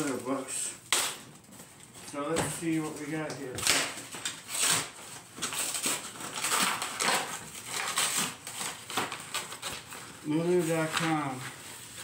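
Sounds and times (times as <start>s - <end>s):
cardboard tearing and rustling: 0.0s - 12.0s.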